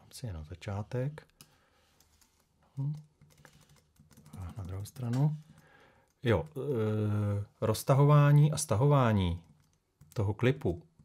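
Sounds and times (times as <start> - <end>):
computer keyboard keys tapping: 1.3 - 6.6, 9.4 - 10.3.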